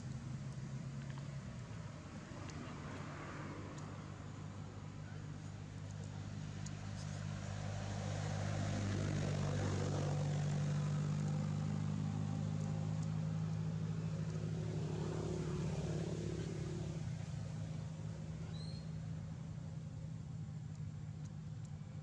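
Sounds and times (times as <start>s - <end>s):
engine humming: 0.0s - 22.0s.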